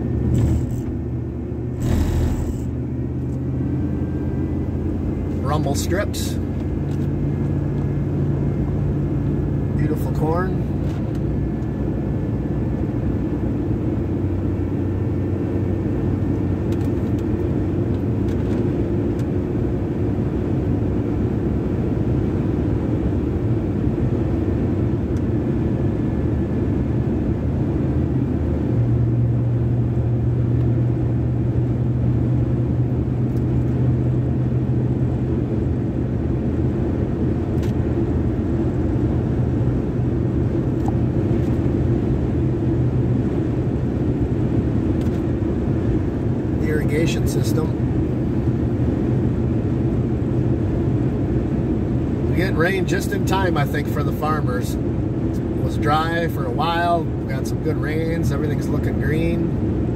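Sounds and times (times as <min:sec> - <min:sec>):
low engine hum: 0:00.0 - 0:59.9
road noise inside truck cab: 0:00.0 - 0:59.9.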